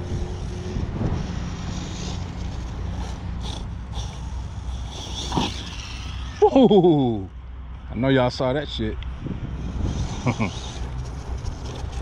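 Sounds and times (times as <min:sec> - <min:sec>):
wind on microphone: 0:00.0 - 0:06.0, 0:09.1 - 0:12.0
distant electric motor whirring: 0:00.0 - 0:07.8, 0:09.0 - 0:12.0.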